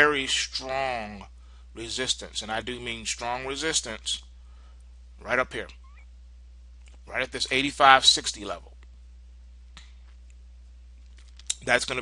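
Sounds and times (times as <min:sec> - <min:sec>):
faint recording noise: 0:00.0 - 0:12.0
low electrical hum: 0:00.0 - 0:12.0.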